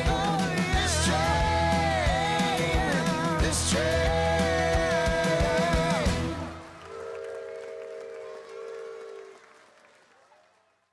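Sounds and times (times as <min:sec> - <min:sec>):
live band playing gospel-rock: 0:00.0 - 0:06.6
crowd cheering and applause: 0:00.0 - 0:10.9.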